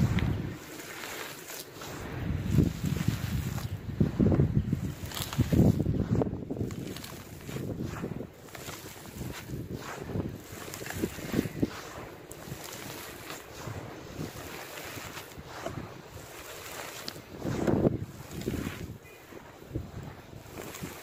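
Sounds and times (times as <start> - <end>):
charcoal crunching: 0.0 - 21.0
rustle of falling grains: 0.0 - 21.0.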